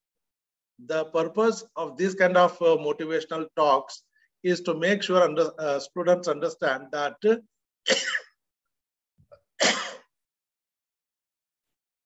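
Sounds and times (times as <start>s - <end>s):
man coughing: 7.9s - 8.4s, 9.6s - 10.1s.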